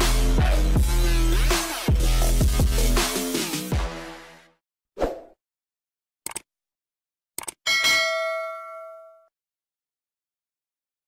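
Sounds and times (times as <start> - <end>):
mouse double-click: 7.4 - 7.6
bright bell ding: 7.7 - 9.3.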